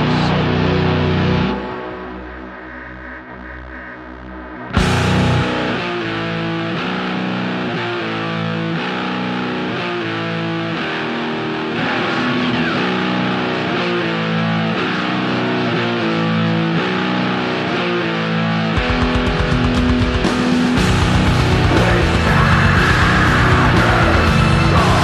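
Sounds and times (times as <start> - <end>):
metal band with drums and bass: 0.0 - 3.8, 4.6 - 25.0
distorted electric guitar riff: 0.0 - 25.0.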